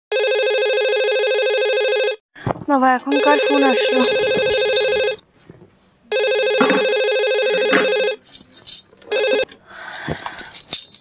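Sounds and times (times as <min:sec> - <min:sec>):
cordless telephone ringing: 0:03.1 - 0:05.2, 0:06.1 - 0:08.2, 0:09.1 - 0:09.5.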